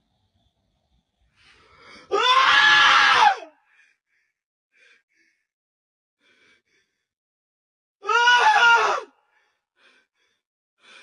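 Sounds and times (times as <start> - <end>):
loud human scream: 2.1 - 3.6, 8.0 - 9.1.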